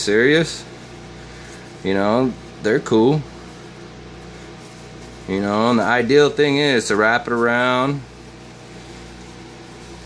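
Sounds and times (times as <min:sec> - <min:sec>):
low mechanical hum: 0:00.0 - 0:10.0.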